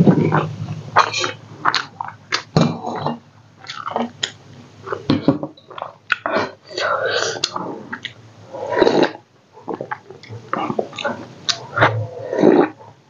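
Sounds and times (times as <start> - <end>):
person chewing food: 0.0 - 12.9.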